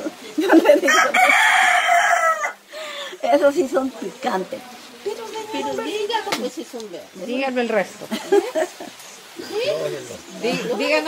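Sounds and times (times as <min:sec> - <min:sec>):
rooster crowing: 0:00.8 - 0:02.8.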